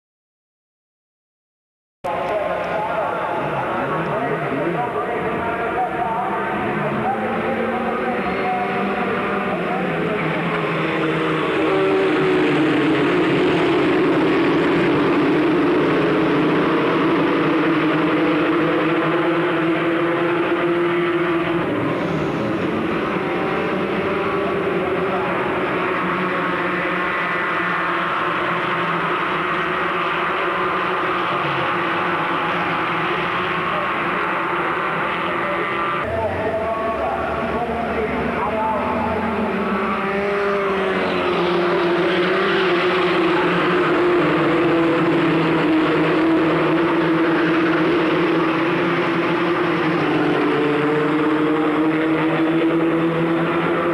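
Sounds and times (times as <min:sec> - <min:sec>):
racing cars passing at high revs: 0:02.1 - 0:53.9.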